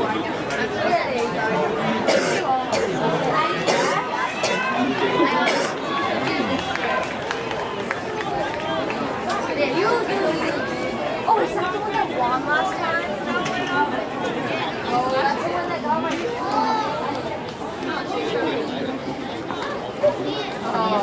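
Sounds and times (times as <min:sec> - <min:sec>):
spectators chattering: 0:00.0 - 0:21.0.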